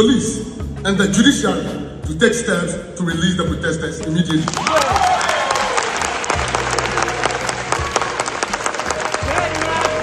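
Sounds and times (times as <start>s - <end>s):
audience applauding: 4.3s - 10.0s
cheers: 4.5s - 10.0s.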